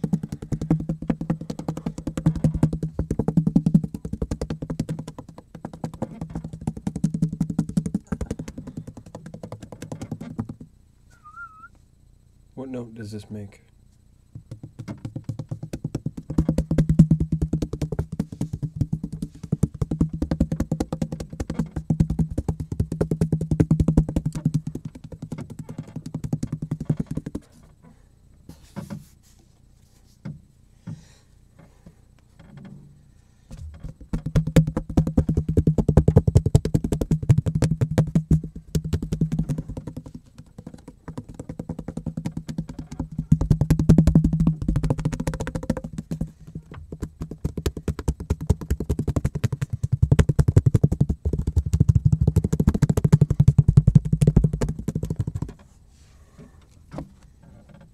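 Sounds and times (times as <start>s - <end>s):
hand tapping cutting board: 0.0s - 10.7s, 14.4s - 27.4s, 33.8s - 55.6s.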